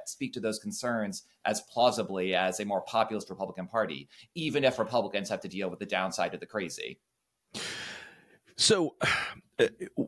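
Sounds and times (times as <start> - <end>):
man speaking: 0.0 - 7.0, 8.6 - 10.0
man breathing: 7.5 - 9.4.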